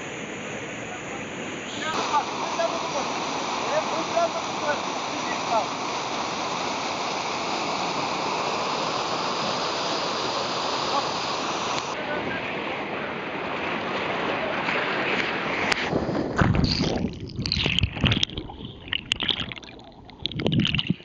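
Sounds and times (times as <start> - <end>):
whitewater stream rushing: 0.0 - 15.9.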